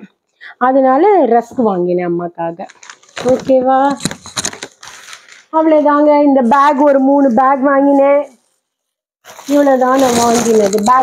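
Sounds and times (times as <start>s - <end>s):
woman speaking: 0.0s - 4.0s, 5.6s - 8.4s, 9.5s - 11.0s
plastic bags crinkling: 2.6s - 5.6s, 9.2s - 11.0s.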